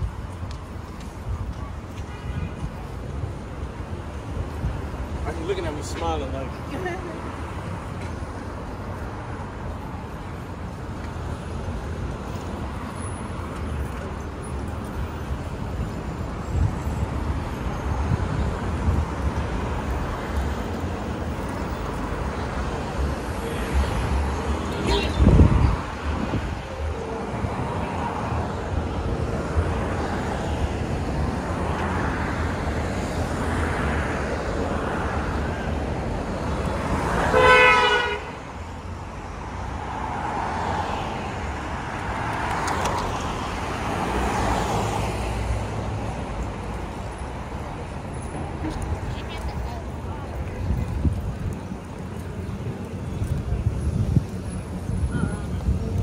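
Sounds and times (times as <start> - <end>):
cars passing close: 0.0 - 56.0
car horn honking: 37.3 - 38.4.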